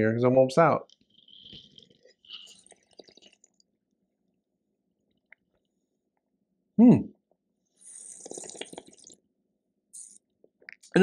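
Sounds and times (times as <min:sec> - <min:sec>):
sipping and slurping wine: 0:00.8 - 0:03.6, 0:07.8 - 0:09.2.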